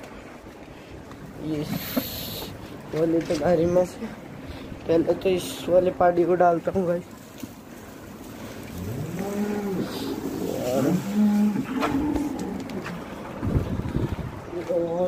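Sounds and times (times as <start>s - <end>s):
cattle lowing: 7.8s - 14.4s.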